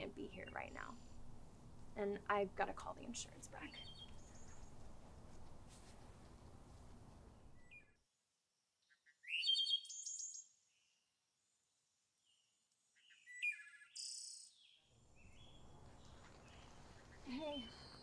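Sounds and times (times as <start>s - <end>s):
small birds chirping: 0.0s - 2.1s, 3.2s - 5.6s, 8.8s - 10.5s, 12.2s - 18.0s
outdoor background noise: 0.0s - 8.4s, 9.1s - 18.0s.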